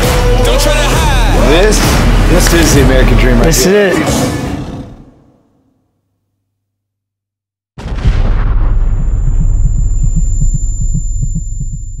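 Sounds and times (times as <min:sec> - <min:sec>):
deep throbbing rumble: 0:07.9 - 0:12.0
thin high whine: 0:09.1 - 0:12.0.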